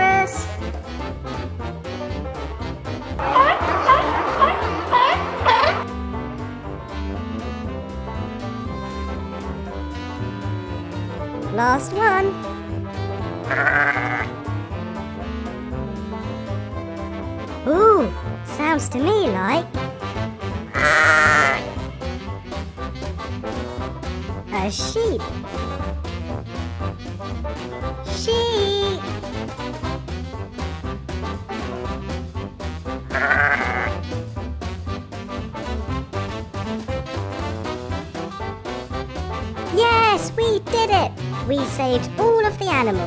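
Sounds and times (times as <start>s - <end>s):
background music: 0.0s - 43.0s
sheep bleating: 13.4s - 14.4s, 20.7s - 21.8s, 33.1s - 34.0s.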